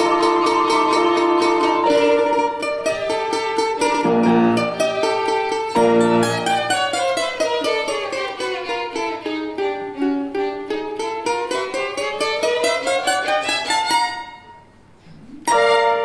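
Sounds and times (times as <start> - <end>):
domra violin and piano playing: 0.0 - 14.5, 15.5 - 16.0.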